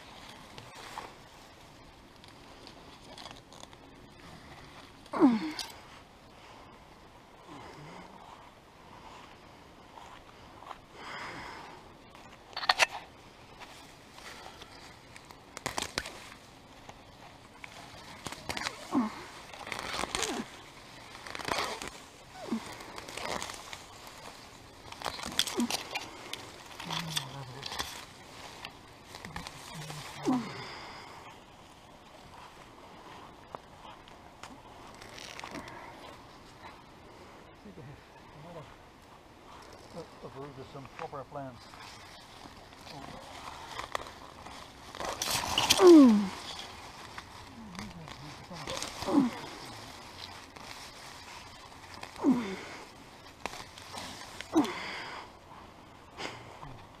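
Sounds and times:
weeds pulled from wet soil: 13.5 - 38.7, 39.4 - 56.4.

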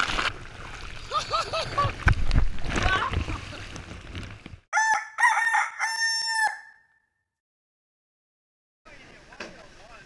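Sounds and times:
rooster crowing: 4.8 - 6.9.

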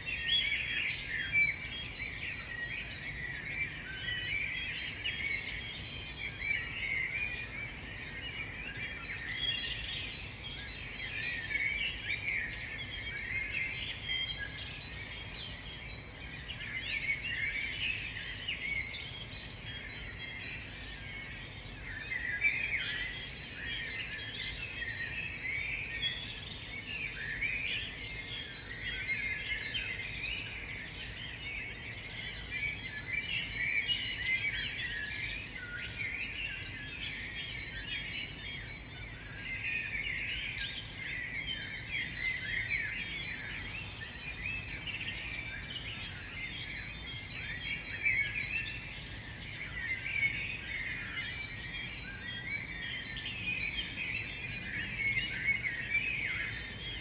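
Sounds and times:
birds chirping and trilling: 0.0 - 57.0.

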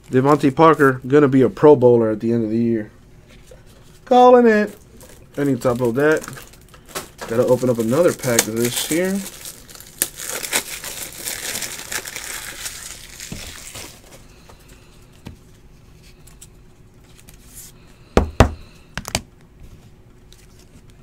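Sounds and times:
cards rustling: 4.6 - 14.2, 16.1 - 17.8
wrapper tearing and crinkling: 4.9 - 14.2.

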